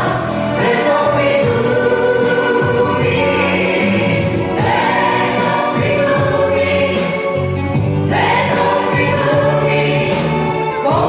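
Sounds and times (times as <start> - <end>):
instrumental accompaniment: 0.0 - 11.0
voices singing together: 0.0 - 11.0.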